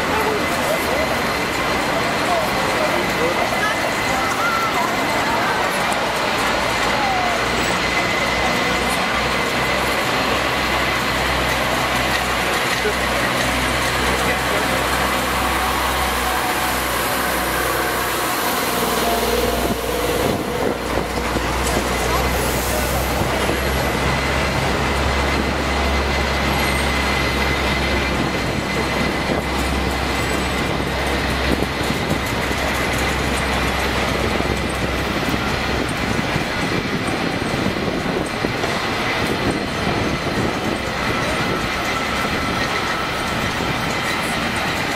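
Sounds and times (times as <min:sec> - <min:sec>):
low traffic rumble: 0:00.0 - 0:44.9
vehicles passing: 0:00.0 - 0:44.9
thin steady whine: 0:07.0 - 0:44.9.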